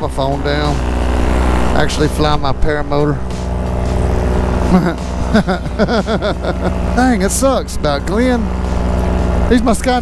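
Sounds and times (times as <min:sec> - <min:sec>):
paramotor engine running: 0:00.0 - 0:10.0
man laughing: 0:04.5 - 0:07.5.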